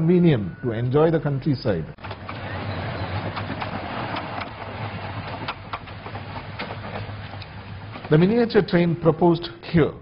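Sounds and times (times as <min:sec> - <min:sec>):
train wheels on track: 0:02.0 - 0:08.4
wheels clicking over rail joints: 0:02.0 - 0:08.5.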